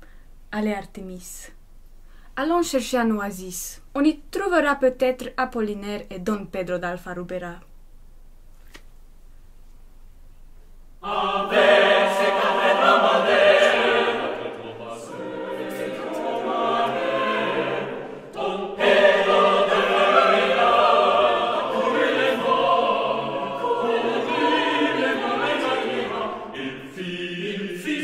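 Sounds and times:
choir singing sustained chords: 0:11.0 - 0:28.0.

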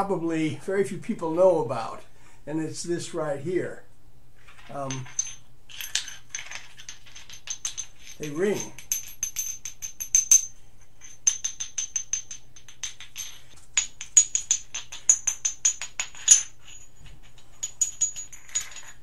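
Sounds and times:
glass pieces clinking and ringing: 0:04.5 - 0:19.0.

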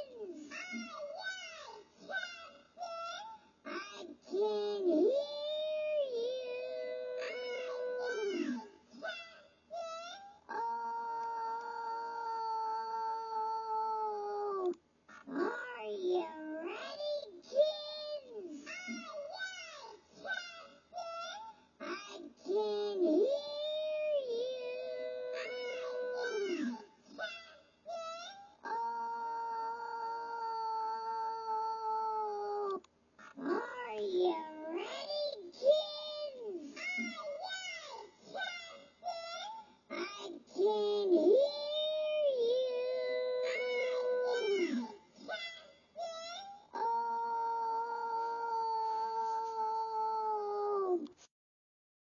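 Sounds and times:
high-pitched voice singing: 0:22.5 - 0:37.6.

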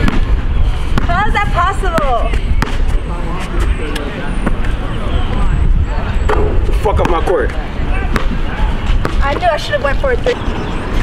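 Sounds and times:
wind rumble on microphone: 0:00.0 - 0:11.0
voices: 0:00.6 - 0:11.0
basketball bouncing on hard court: 0:09.0 - 0:09.7.

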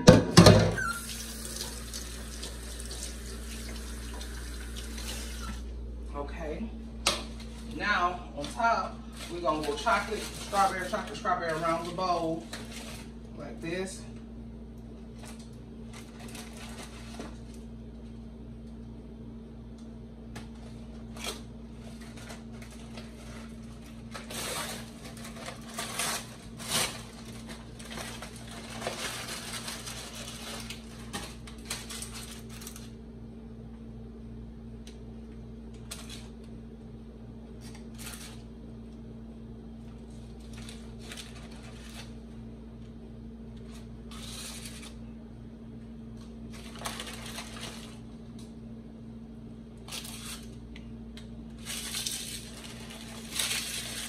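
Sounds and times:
steady low hum: 0:01.5 - 0:54.0
paper bag crinkling: 0:07.3 - 0:13.2, 0:15.2 - 0:17.7, 0:20.5 - 0:33.0, 0:40.0 - 0:42.4, 0:43.6 - 0:45.0, 0:46.5 - 0:48.2, 0:51.5 - 0:54.0.

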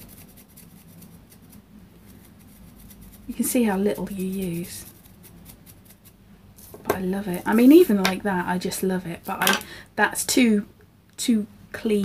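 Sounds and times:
woman speaking: 0:03.3 - 0:04.9, 0:06.8 - 0:12.0.

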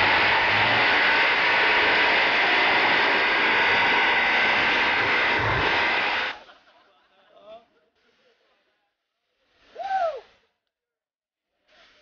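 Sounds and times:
person whooping: 0:09.7 - 0:10.3.

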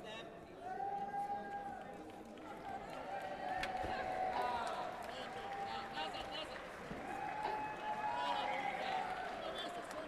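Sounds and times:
sports hall hubbub: 0:00.0 - 0:10.0.

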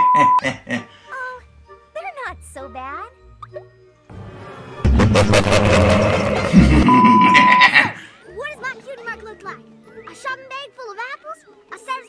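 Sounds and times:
man laughing: 0:00.0 - 0:00.9, 0:04.9 - 0:08.0
cartoon music: 0:04.8 - 0:10.5.

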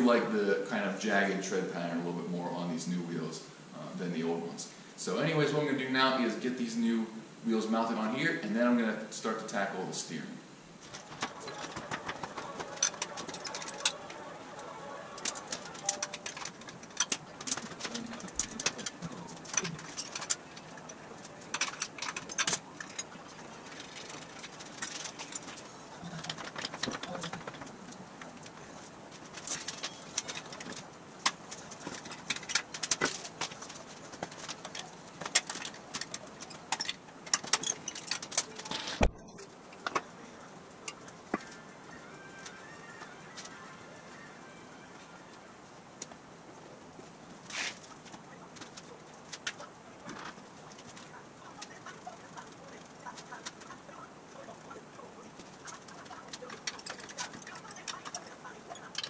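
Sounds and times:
hand tools clinking on metal parts: 0:10.9 - 0:14.4, 0:15.1 - 0:27.7, 0:29.2 - 0:39.1, 0:55.4 - 0:59.0.

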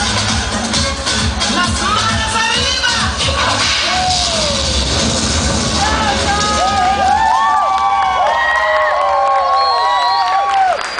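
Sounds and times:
dance music with a beat: 0:00.0 - 0:07.2
audience cheering and whooping: 0:03.6 - 0:10.9.

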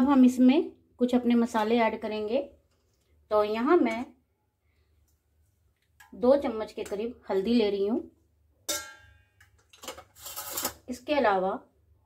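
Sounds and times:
metal spoon clanking on steel bowl: 0:08.6 - 0:10.8
scrape: 0:10.0 - 0:10.8.

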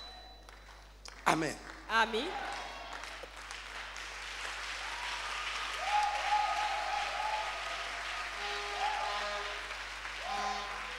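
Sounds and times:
congregation applauding: 0:00.4 - 0:10.9
held musical notes: 0:08.1 - 0:10.9.

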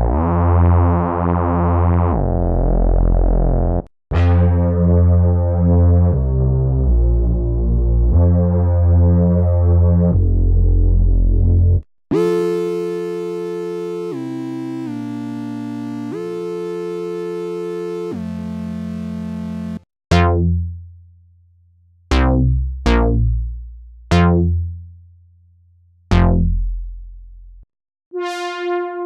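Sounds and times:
chorused synth bass notes: 0:00.0 - 0:20.9, 0:22.1 - 0:24.9, 0:26.1 - 0:27.6, 0:28.2 - 0:29.0
plucked synth bass note: 0:17.9 - 0:20.9, 0:22.1 - 0:24.8, 0:26.1 - 0:27.6
bright buzzy synth tone: 0:26.1 - 0:26.6, 0:28.2 - 0:29.0.

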